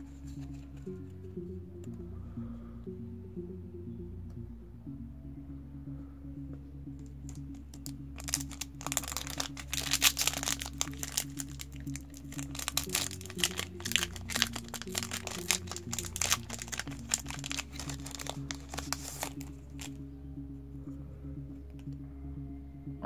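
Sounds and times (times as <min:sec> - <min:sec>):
background music: 0:00.0 - 0:23.0
foil wrapper crinkling and tearing: 0:08.2 - 0:19.9.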